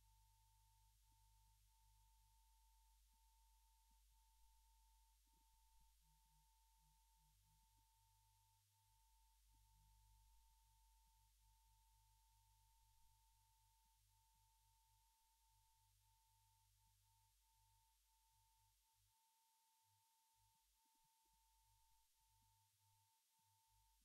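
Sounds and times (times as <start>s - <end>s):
faint steady tone: 0.0s - 24.0s.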